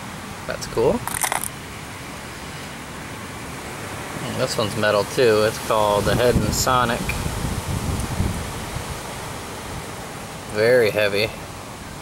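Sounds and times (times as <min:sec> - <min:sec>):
wind buffeting microphone: 0:05.7 - 0:10.0.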